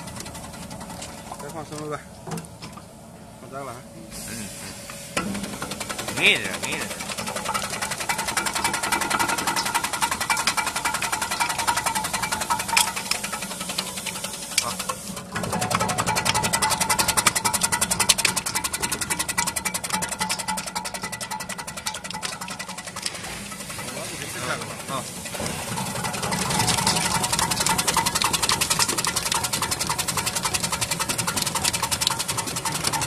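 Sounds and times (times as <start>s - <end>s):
motor hum: 0.0s - 33.0s
slicing machine blade ticking: 5.2s - 33.0s.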